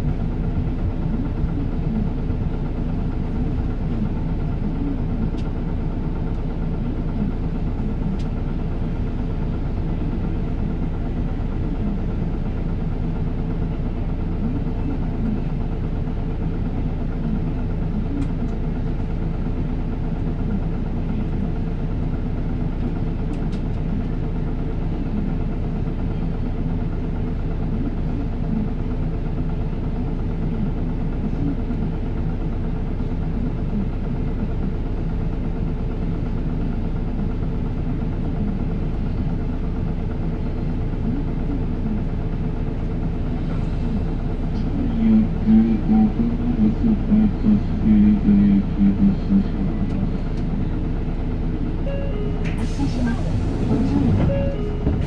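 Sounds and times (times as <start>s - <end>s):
bus diesel engine running: 0.0s - 55.0s.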